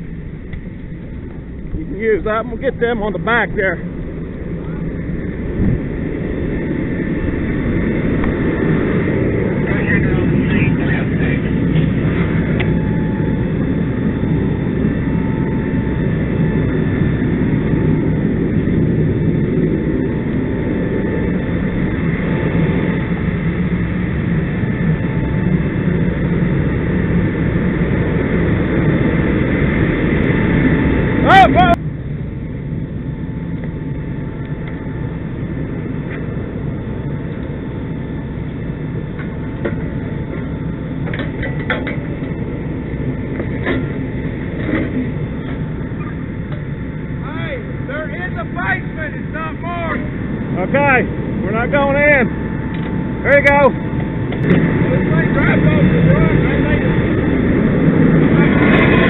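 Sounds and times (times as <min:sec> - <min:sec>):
diesel engine rumbling: 0:00.0 - 0:59.0.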